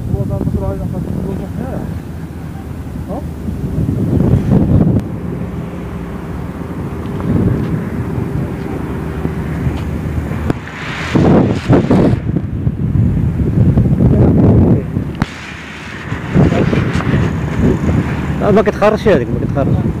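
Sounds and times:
tractor engine hum: 0.0s - 20.0s
wind buffeting microphone: 0.0s - 20.0s.

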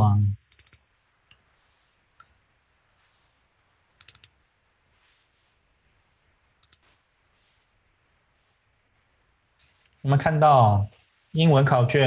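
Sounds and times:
computer mouse clicks: 0.4s - 1.5s, 4.0s - 4.4s, 6.6s - 7.0s.

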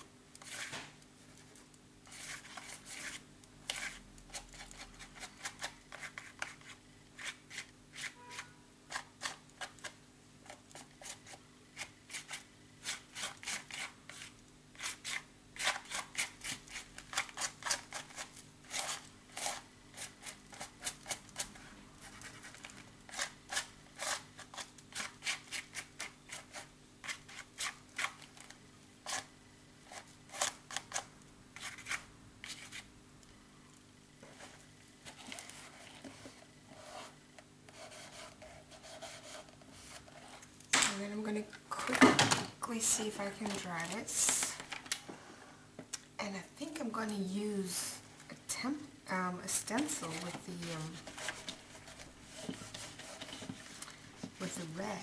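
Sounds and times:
palette knife scraping paper: 2.1s - 28.2s, 29.0s - 29.3s, 29.9s - 32.9s, 35.1s - 40.5s, 49.8s - 54.7s.

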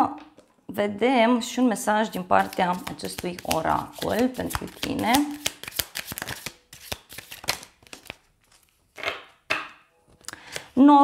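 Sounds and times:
cards being shuffled: 2.2s - 9.3s.

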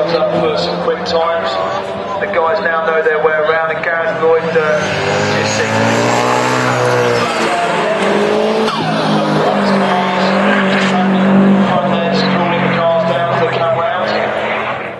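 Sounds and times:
race car engine revving past: 0.0s - 14.9s.

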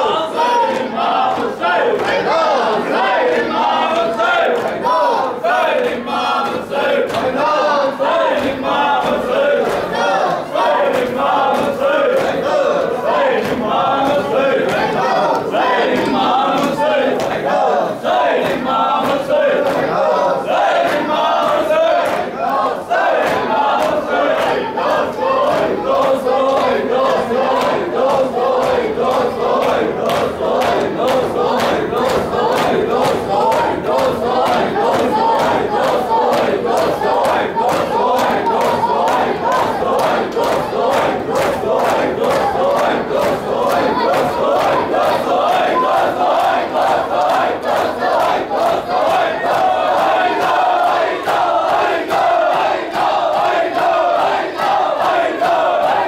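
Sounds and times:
men chanting a lament: 0.0s - 56.0s
hand slaps on chests: 18.4s - 20.0s, 20.8s - 56.0s.

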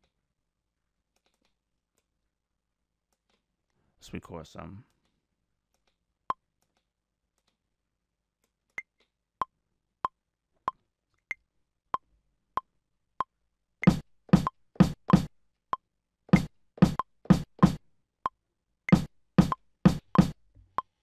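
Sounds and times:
kick drum hits: 13.8s - 15.3s, 16.3s - 17.8s, 18.9s - 20.4s.

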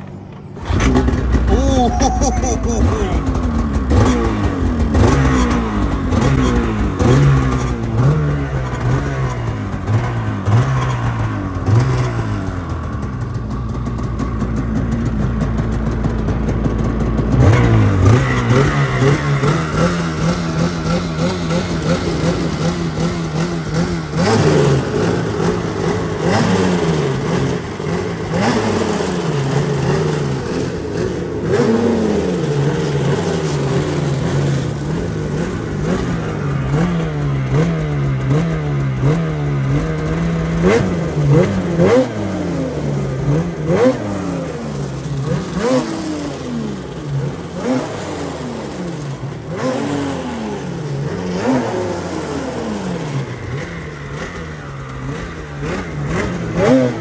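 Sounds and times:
snowmobile engine revving: 0.6s - 57.0s.

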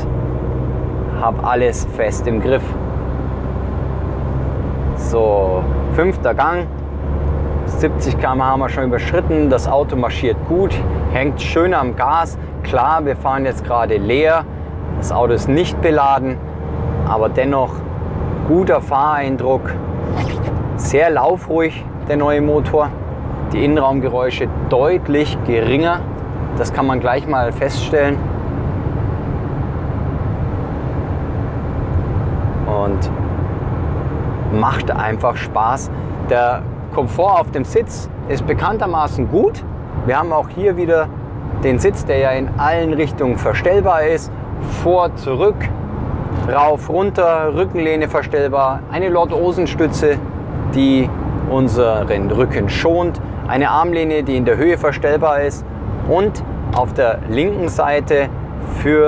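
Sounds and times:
diesel engine rumble: 0.0s - 59.0s.

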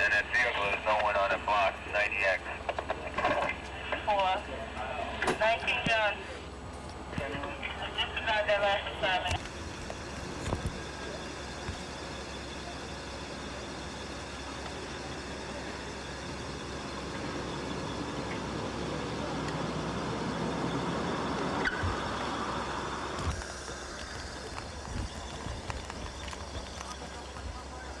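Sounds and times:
steady low hum: 0.0s - 28.0s
street traffic: 0.0s - 28.0s.

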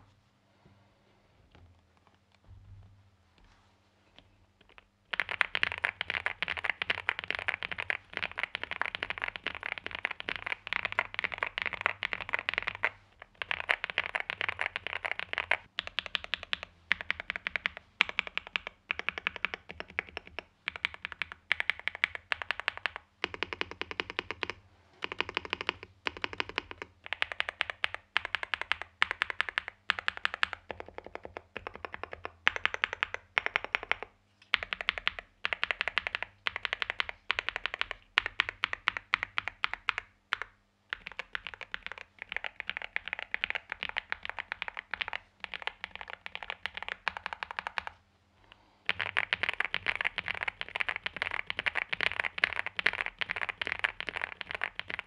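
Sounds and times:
mechanical keyboard keys clacking: 5.1s - 47.9s, 48.9s - 55.0s.

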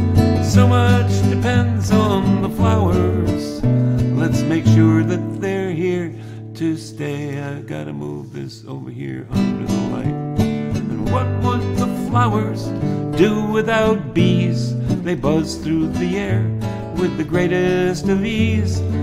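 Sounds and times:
classical guitar melody: 0.0s - 19.0s.

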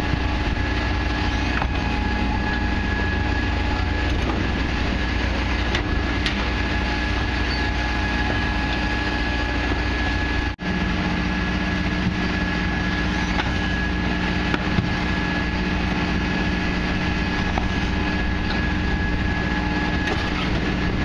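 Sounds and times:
machinery high whine: 0.0s - 21.0s
truck engine hum: 0.0s - 21.0s.

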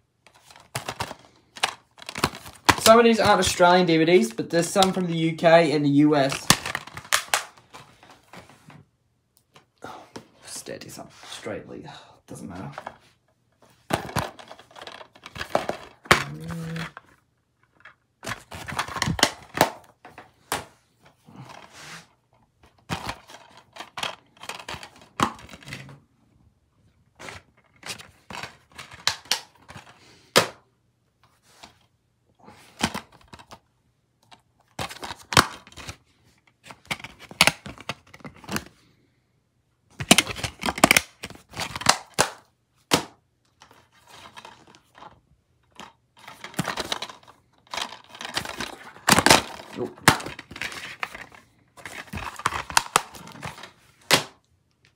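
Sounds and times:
plastic cases snapping and clattering: 0.3s - 3.6s, 6.2s - 7.9s, 13.8s - 21.6s, 22.6s - 26.0s, 27.2s - 30.6s, 34.2s - 36.0s, 40.0s - 54.4s.

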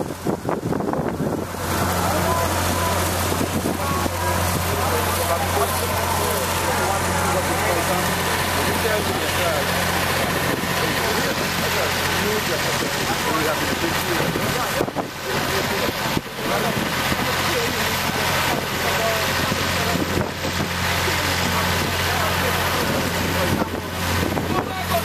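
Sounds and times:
engine humming: 0.0s - 25.0s
voices chattering: 1.2s - 25.0s.

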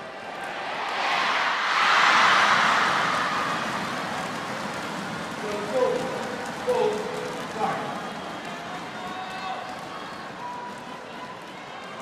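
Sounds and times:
crowd noise in an arena: 0.0s - 12.0s.

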